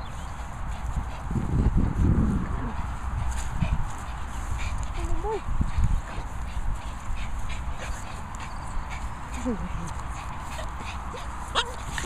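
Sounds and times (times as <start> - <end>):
feet and paws scuffing grass: 0.0 - 12.0
wind rumble: 0.0 - 12.0.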